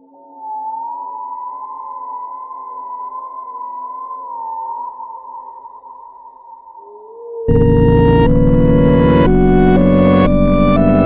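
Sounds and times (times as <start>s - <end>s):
high synthesizer tone: 7.5s - 11.0s
low synth drones: 7.5s - 11.0s.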